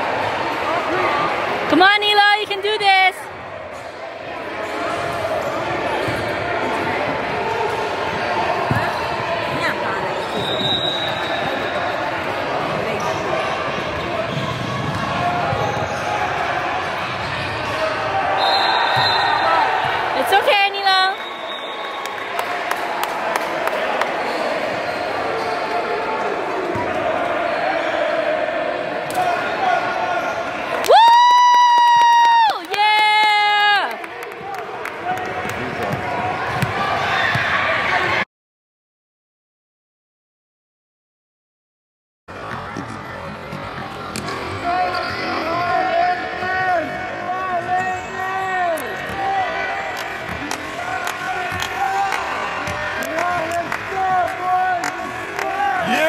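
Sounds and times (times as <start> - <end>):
echoing chatter: 0.0 - 30.8, 42.3 - 56.0.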